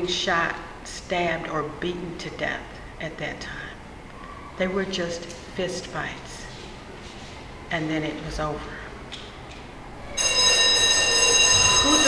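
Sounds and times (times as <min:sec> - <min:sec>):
high multi-pitch ringing tone: 0:10.0 - 0:12.0.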